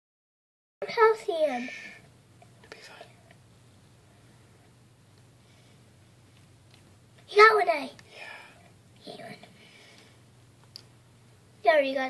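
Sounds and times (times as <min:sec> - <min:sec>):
low steady hum: 0:00.8 - 0:12.0
faint whispering: 0:02.6 - 0:03.3
soft clicks: 0:10.6 - 0:11.0.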